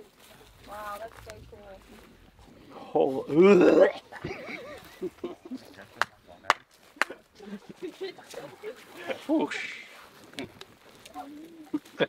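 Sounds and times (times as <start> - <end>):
laughter: 4.0 - 6.0, 7.0 - 9.6.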